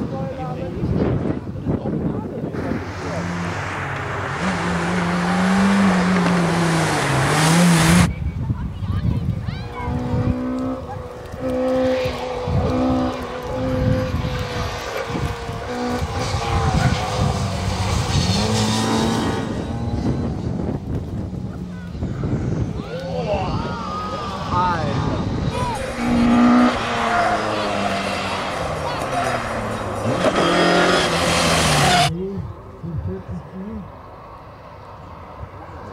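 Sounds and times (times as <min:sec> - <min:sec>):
racing car engine revving: 0:02.5 - 0:08.1, 0:09.7 - 0:20.5, 0:23.6 - 0:32.1.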